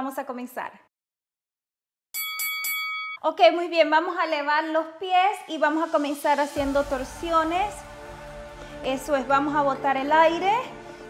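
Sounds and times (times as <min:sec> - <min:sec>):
timer bell chime: 0:02.2 - 0:03.2.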